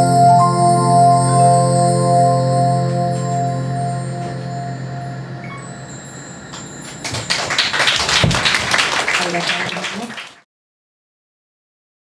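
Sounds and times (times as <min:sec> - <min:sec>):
audience clapping: 0:06.9 - 0:10.5.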